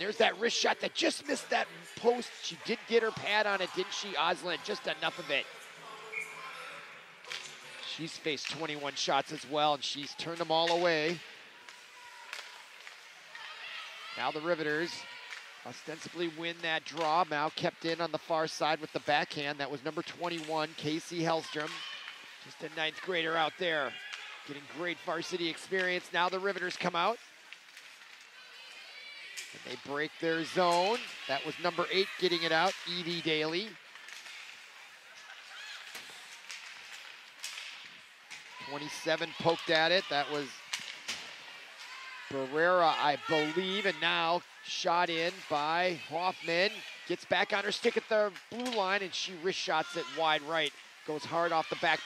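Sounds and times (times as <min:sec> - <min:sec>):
arena background ambience: 0:00.0 - 0:52.0
faint stick and skate clicks: 0:07.2 - 0:13.8, 0:15.2 - 0:17.6, 0:18.8 - 0:42.0, 0:42.9 - 0:52.0.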